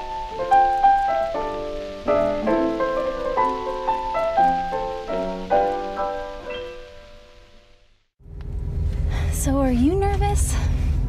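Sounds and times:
piano chords: 0.0 - 8.0
low rumble of car cabin: 8.2 - 11.0.

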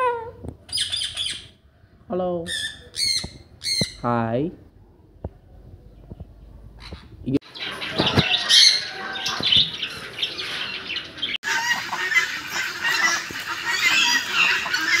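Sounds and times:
birds calling and chattering: 0.6 - 4.3, 5.6 - 15.0
loud bird squawks: 2.5 - 4.0, 11.4 - 15.0.

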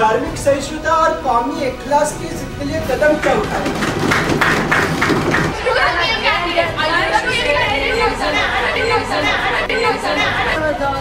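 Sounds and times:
young people talking and shouting: 0.0 - 11.0.

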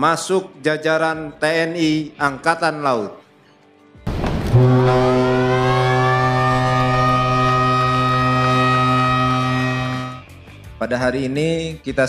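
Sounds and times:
ship siren blast: 4.1 - 10.2.

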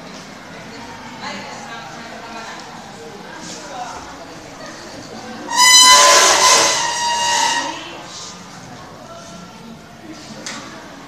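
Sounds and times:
noisy voices: 0.0 - 11.0
high-pitched shriek: 5.5 - 8.0.

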